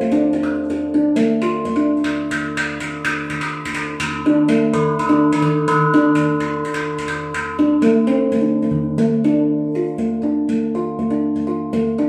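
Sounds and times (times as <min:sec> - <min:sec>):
handpan notes ringing: 0:00.0 - 0:12.0.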